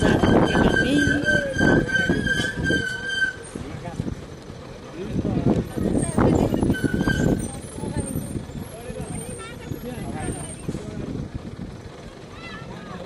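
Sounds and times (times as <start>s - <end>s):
people talking: 0.0s - 4.1s, 4.8s - 11.3s, 12.3s - 13.0s
vehicle engine and road noise: 0.0s - 13.0s.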